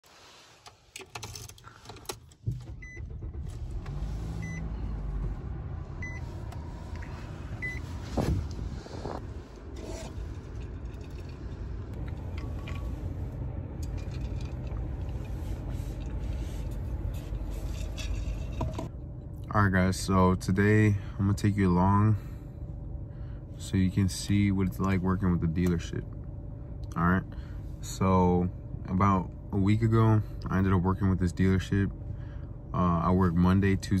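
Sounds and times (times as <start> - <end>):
car engine starting and idling: 0.2 - 34.0.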